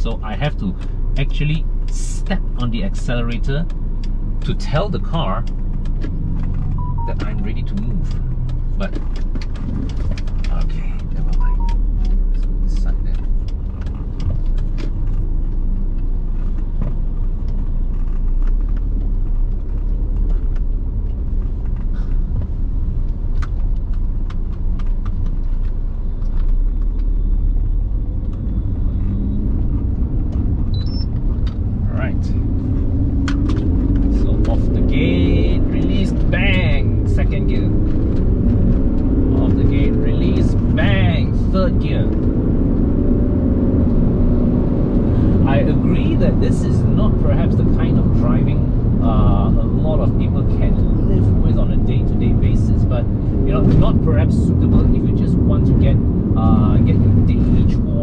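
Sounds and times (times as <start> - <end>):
car engine and road rumble: 0.0 - 58.0.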